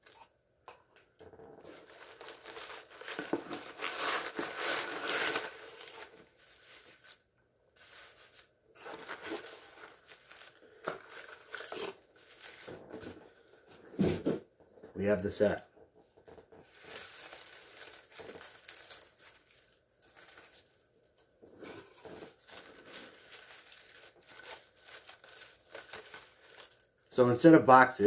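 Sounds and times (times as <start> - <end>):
paper wrapping crinkling: 1.6 - 13.2, 16.3 - 27.1.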